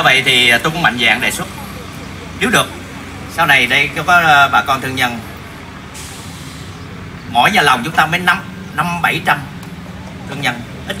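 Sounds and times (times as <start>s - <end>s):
road vehicle hiss: 0.0s - 11.0s.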